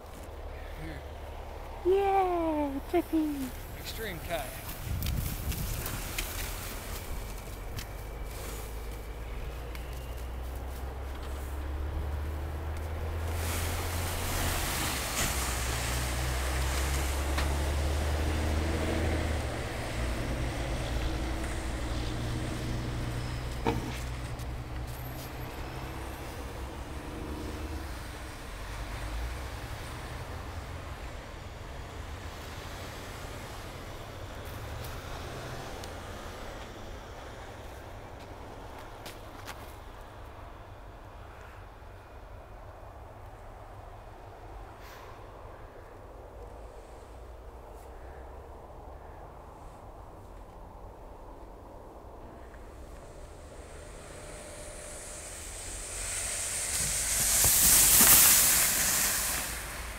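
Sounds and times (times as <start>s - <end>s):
truck engines idling: 0.0s - 41.3s, 44.4s - 59.9s.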